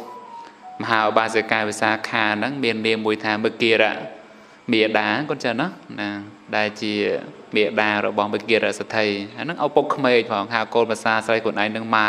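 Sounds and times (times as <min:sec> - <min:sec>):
man chanting a sermon: 0:00.8 - 0:12.0.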